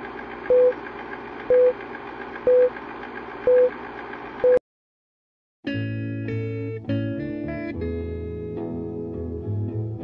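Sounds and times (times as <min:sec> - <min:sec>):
film projector rattle: 0:00.0 - 0:04.4.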